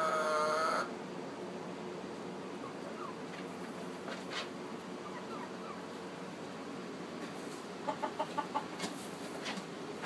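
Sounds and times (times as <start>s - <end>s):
hens clucking: 0.0s - 1.0s, 2.2s - 10.0s.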